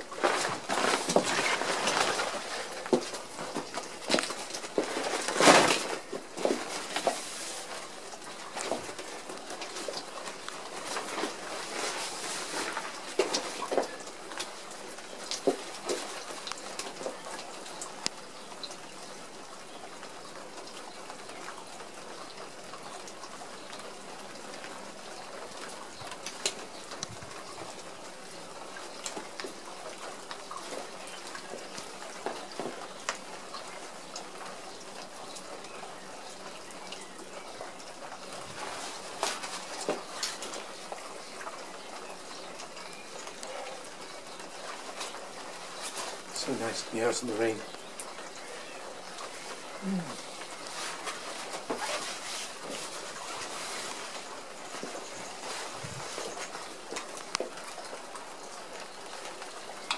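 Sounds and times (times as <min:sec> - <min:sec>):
plastic raincoat crackling: 0:00.0 - 0:18.4, 0:37.6 - 0:59.9
light rain: 0:00.0 - 0:59.9.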